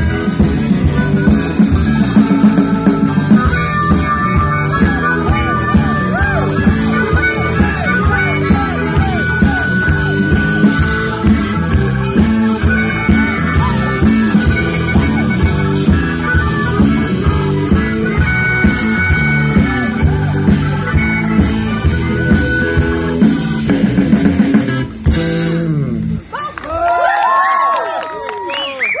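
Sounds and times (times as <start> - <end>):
blues-rock band playing: 0.0 - 26.5.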